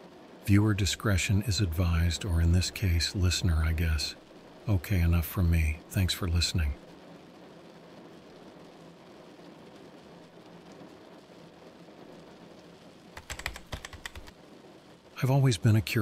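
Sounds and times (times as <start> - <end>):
heavy rain hiss: 0.0 - 16.0
fast typing on a keyboard: 13.2 - 14.4.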